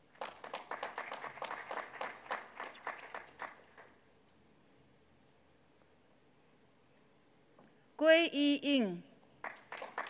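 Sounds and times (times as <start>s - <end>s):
light applause: 0.0s - 4.0s, 9.4s - 10.0s.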